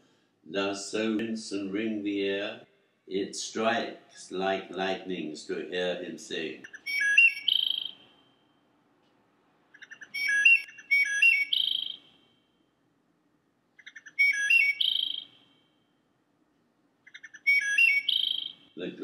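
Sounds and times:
bird whistling song: 0:06.6 - 0:08.3, 0:09.8 - 0:12.3, 0:13.8 - 0:15.6, 0:17.1 - 0:18.8.

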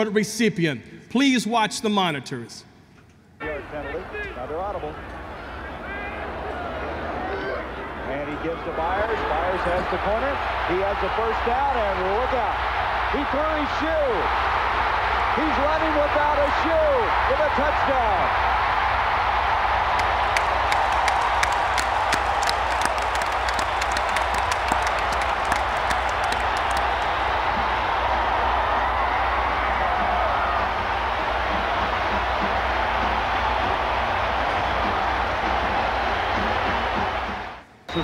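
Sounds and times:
stadium crowd cheering: 0:03.4 - 0:38.0
sharp claps: 0:19.9 - 0:28.2.

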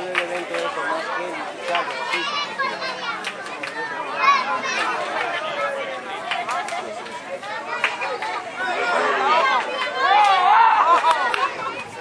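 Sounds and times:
voices shouting and calling: 0:00.0 - 0:12.0.

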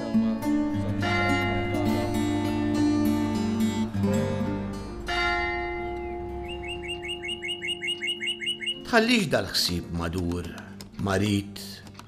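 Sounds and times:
ringing note: 0:00.9 - 0:04.1, 0:04.9 - 0:08.8
small bird chirping: 0:06.4 - 0:08.9.

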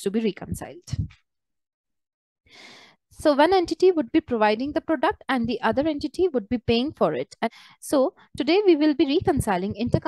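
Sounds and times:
woman's short intake of breath: 0:02.5 - 0:03.0.

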